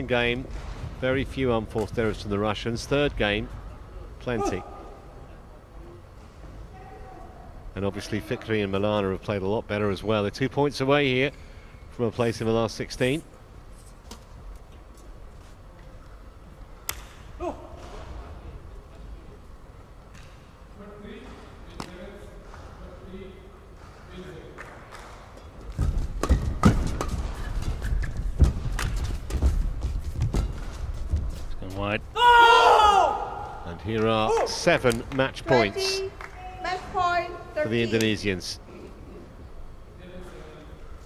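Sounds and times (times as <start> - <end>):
heavy footfalls on court: 25.8 - 31.6
loud shout: 32.2 - 33.6.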